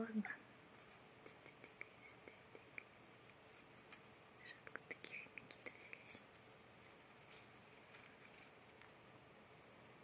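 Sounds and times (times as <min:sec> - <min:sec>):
hamster gnawing bedding: 0:02.4 - 0:09.2.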